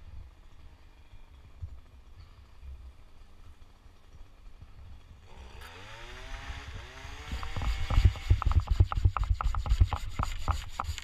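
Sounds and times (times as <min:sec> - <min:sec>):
hand saw cutting branch: 0:05.3 - 0:11.0.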